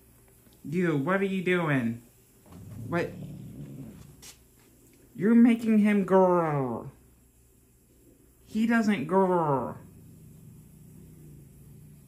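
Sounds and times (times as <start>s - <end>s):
cat growling low: 2.5s - 4.2s, 9.5s - 12.0s.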